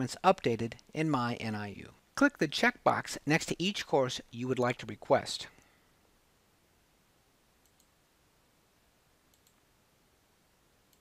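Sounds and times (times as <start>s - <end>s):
computer mouse clicks: 7.6s - 7.9s, 9.3s - 9.6s.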